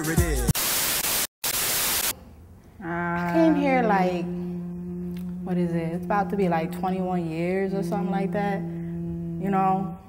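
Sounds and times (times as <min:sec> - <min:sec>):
music with singing voice: 0:00.0 - 0:00.6
television static hiss: 0:00.6 - 0:02.1.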